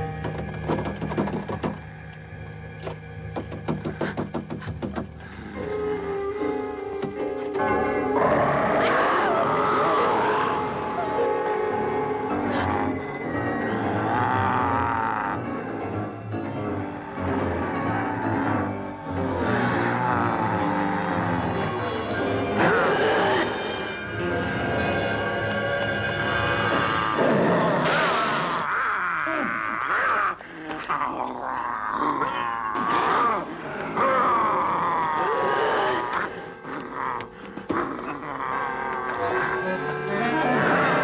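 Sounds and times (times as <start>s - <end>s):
dramatic orchestral score: 5.0s - 28.7s
man growling and roaring: 26.7s - 39.7s.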